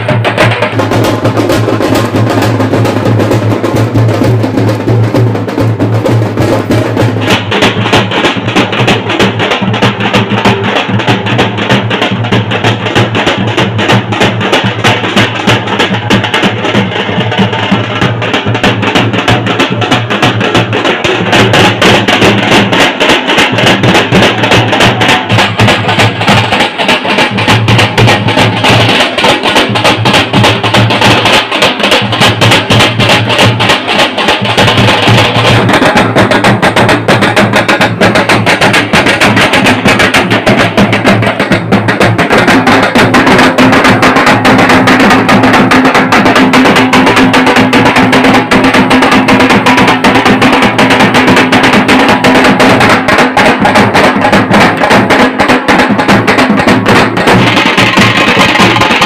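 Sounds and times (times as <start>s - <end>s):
drum band beating drums: 0.0s - 59.0s.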